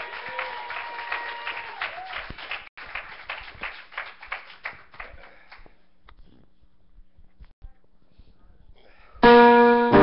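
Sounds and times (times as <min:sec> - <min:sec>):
congregation applauding: 0:00.0 - 0:05.6.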